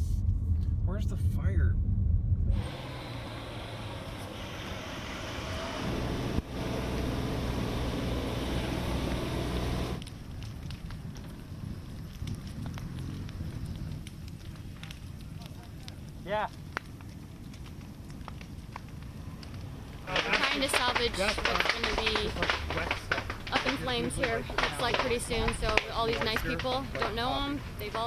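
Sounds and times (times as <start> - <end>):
burning timbers crackling: 0.0 - 28.0
flames rushing hiss: 2.5 - 28.0.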